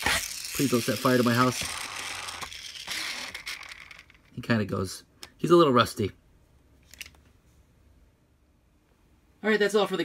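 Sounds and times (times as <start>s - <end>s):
friction toy motor grinding: 0.0s - 4.3s.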